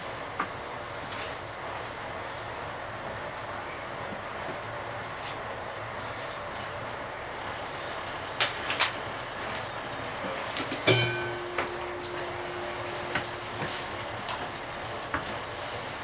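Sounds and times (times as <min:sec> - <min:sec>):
railbus engine rumble: 0:00.0 - 0:16.0
steady hum: 0:10.8 - 0:15.8.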